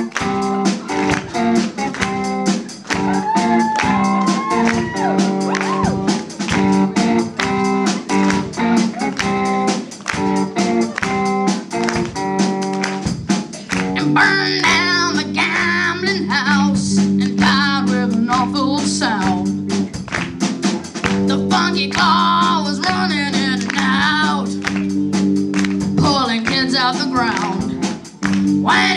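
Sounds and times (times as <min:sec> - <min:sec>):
drum kit beat: 0:00.0 - 0:28.9
electric guitar chords: 0:00.0 - 0:28.9.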